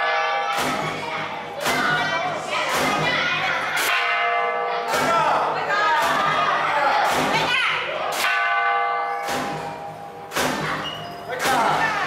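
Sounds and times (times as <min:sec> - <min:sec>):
metal bell ringing: 0:07.8 - 0:12.0.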